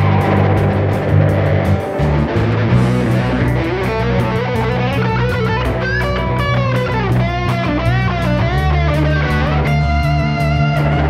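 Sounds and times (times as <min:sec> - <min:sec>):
bass guitar: 0:00.0 - 0:11.0
distorted electric guitar: 0:00.0 - 0:11.0
drums with steady cymbal beat: 0:00.0 - 0:11.0.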